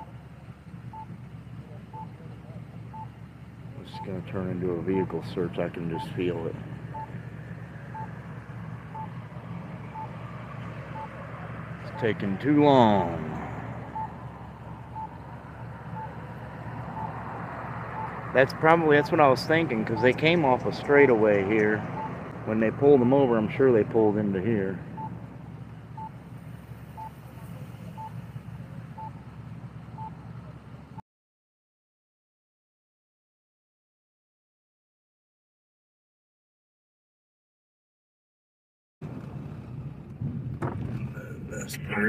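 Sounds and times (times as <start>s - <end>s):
idling vehicles rumble: 0.0s - 31.0s, 39.0s - 42.0s.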